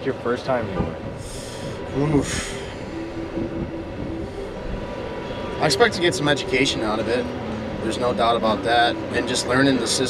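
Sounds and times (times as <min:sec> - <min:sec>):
faint hum: 0:00.0 - 0:10.0
low vehicle rumble: 0:00.0 - 0:10.0.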